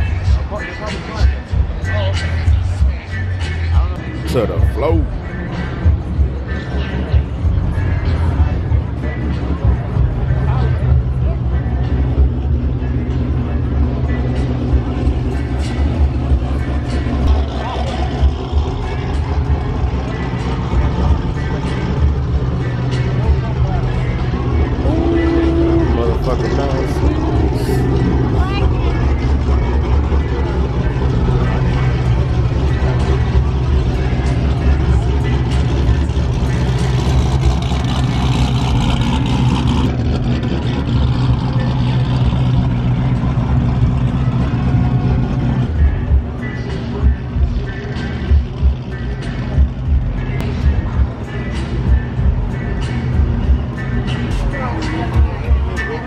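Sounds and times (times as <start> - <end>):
indistinct crowd voices: 0.0 - 56.0
low rumble of car engines: 0.0 - 56.0.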